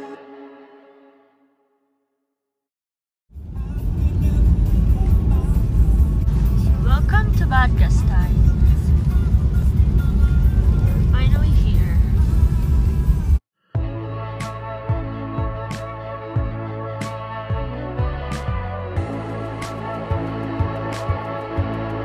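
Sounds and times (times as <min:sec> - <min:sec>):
car tyre and engine rumble: 0:03.4 - 0:13.4.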